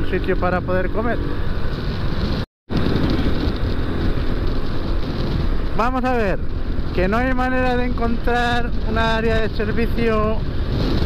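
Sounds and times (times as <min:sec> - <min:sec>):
motorcycle engine running: 0:00.0 - 0:11.0
wind noise on microphone: 0:00.0 - 0:11.0.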